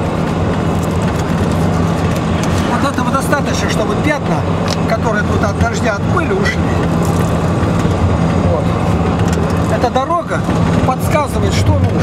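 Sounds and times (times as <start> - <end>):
engine and road drone: 0.0 - 12.0.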